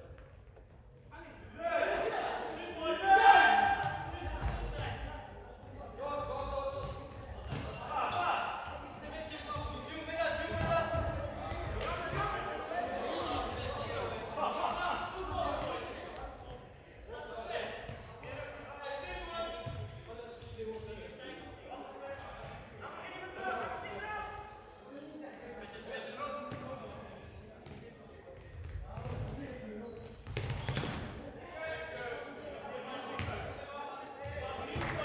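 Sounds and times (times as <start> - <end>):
players shouting in echoing hall: 1.3 - 16.5.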